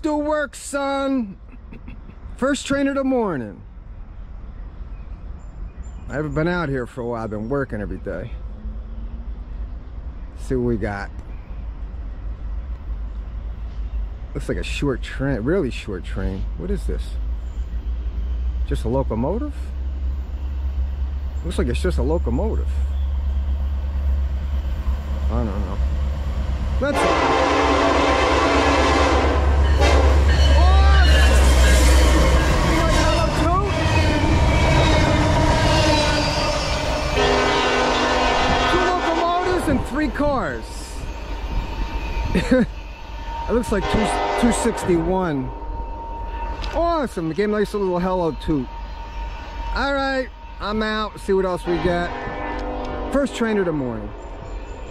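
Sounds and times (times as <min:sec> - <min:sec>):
diesel locomotives rumbling: 0:00.0 - 0:54.9
train horn chord: 0:26.9 - 0:39.7, 0:43.1 - 0:46.7, 0:51.5 - 0:54.3.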